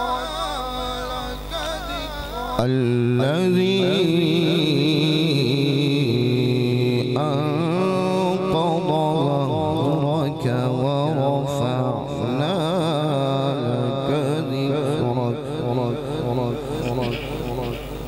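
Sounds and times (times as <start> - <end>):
man reciting melodically into microphone: 0.0 - 18.0.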